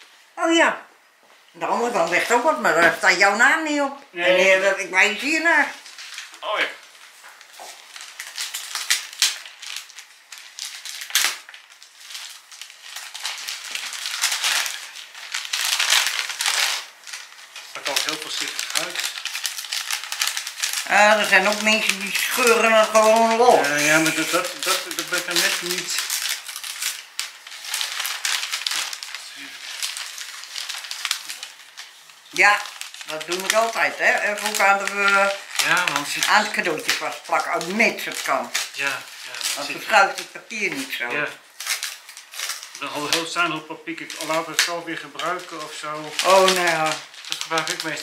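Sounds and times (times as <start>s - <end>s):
wrapping paper crinkling: 1.6s - 48.0s.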